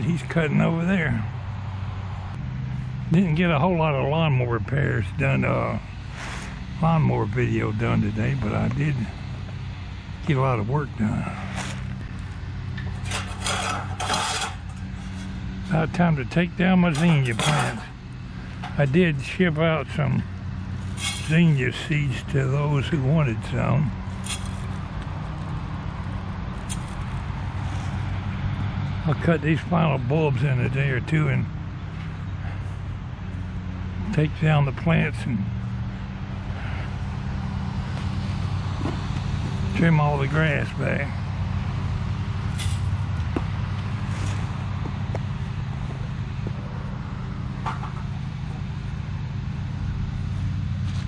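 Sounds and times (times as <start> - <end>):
lawn mower engine running: 0.0 - 51.0.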